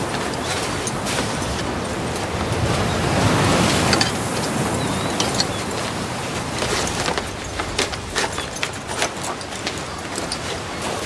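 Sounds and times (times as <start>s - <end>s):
surf breaking on beach: 0.0s - 9.1s
wind: 0.0s - 11.0s.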